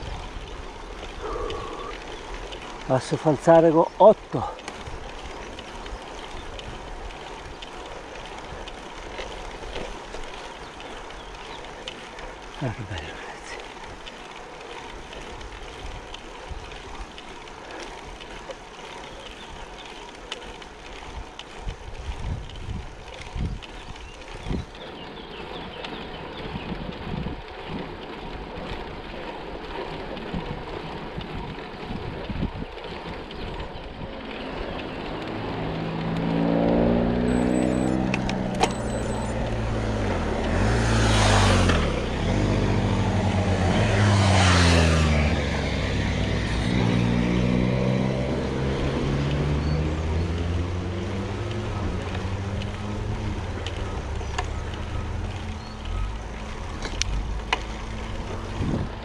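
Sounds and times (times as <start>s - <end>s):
motorcycles passing: 0.0s - 59.0s
wind and road noise: 0.0s - 59.0s.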